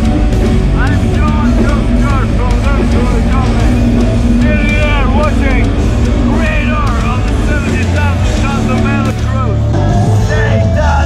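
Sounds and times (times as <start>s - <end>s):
live metal band playing: 0.0s - 11.0s
man talking: 0.7s - 10.8s.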